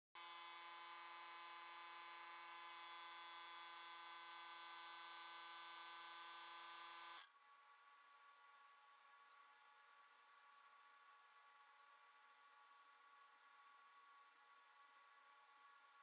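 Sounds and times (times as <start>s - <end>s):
buzzing drone of held tones: 0.2s - 7.8s.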